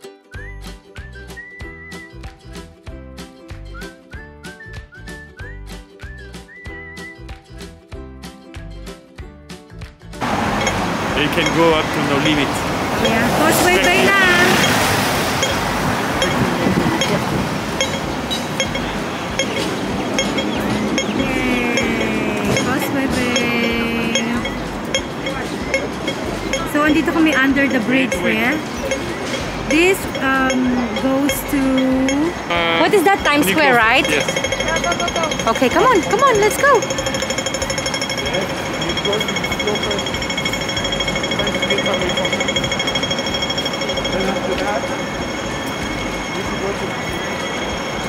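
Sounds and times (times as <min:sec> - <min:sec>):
street traffic: 0:10.0 - 0:48.0
pedestrian crossing beeps: 0:10.2 - 0:48.0.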